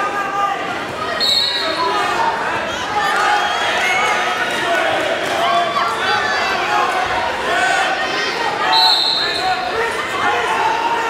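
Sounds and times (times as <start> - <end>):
people shouting in a gymnasium: 0.0 - 11.0.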